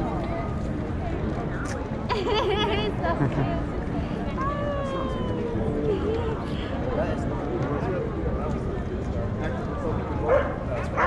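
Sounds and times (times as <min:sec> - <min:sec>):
crowd chatter: 0:00.0 - 0:11.0
dog barking: 0:10.3 - 0:11.0.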